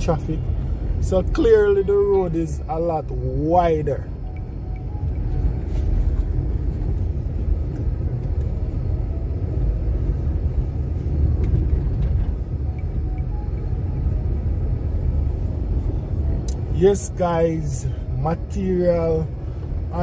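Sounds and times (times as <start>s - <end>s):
car engine: 0.0s - 20.0s.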